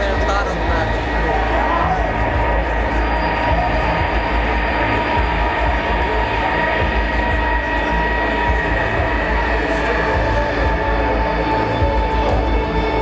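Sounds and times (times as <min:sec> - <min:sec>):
crowd murmur: 0:00.0 - 0:13.0
live band droning: 0:00.0 - 0:13.0.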